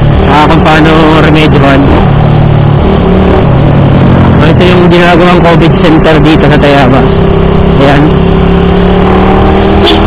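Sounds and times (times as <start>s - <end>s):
motorcycle engine cruising: 0.0s - 10.0s
road noise: 0.0s - 10.0s.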